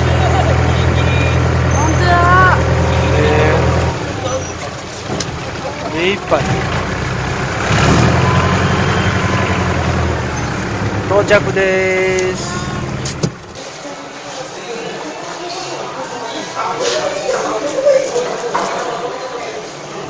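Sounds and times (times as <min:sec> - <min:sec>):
boat engine droning: 0:00.0 - 0:13.6.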